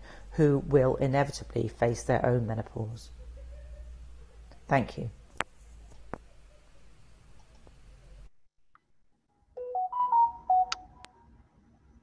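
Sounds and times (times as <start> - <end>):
electronic chime beeps: 9.6 - 11.0.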